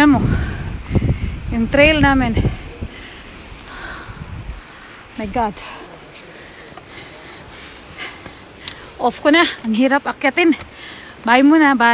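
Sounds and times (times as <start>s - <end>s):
person breathing effortfully: 2.4s - 9.0s, 10.6s - 11.2s.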